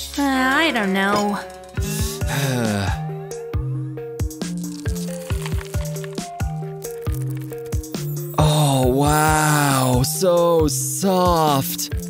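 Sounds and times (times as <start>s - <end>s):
background music with steady beat: 0.0s - 12.0s
foam beads rustling: 4.5s - 8.3s.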